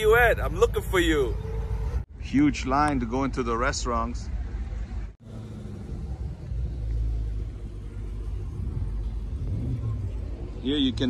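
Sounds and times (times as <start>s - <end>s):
car engine running at low revs: 4.5s - 11.0s.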